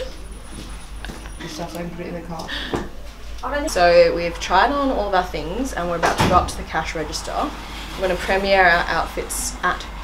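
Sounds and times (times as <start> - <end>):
shop room noise: 0.0 - 10.0.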